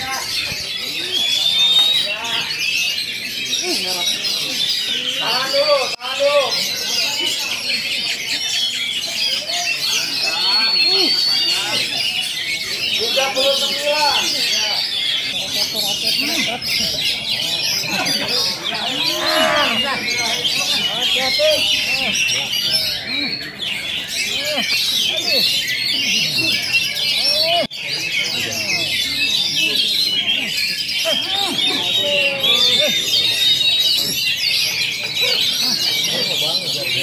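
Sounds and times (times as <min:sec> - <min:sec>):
murmur of voices: 0:00.0 - 0:37.0
songbirds chirping and whistling: 0:00.0 - 0:37.0.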